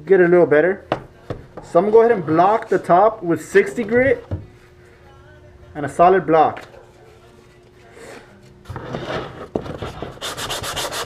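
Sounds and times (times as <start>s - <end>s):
sandpaper rubbing over filler: 8.8s - 11.0s
sanding block knock: 9.8s - 11.0s.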